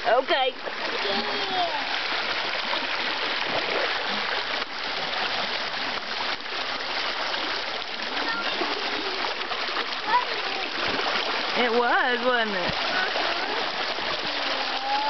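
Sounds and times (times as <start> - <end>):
water rushing over rocks: 0.0 - 15.0
faint voice calling: 14.5 - 15.0.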